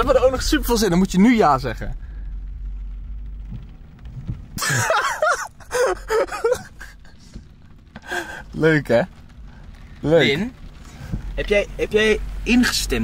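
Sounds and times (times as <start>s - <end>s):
car cabin rumble: 0.0s - 13.0s
people laughing: 4.6s - 7.1s.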